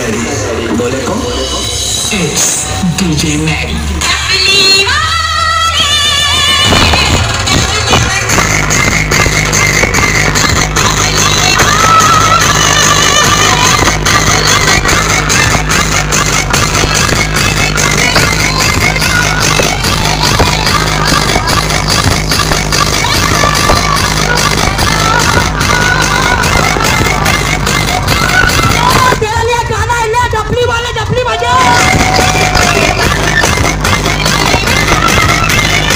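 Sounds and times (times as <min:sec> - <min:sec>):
electronic dance music: 0:00.0 - 0:35.9.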